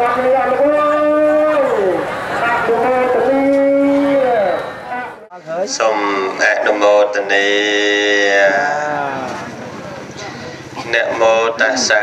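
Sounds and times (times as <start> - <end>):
person chanting: 5.8 - 9.3.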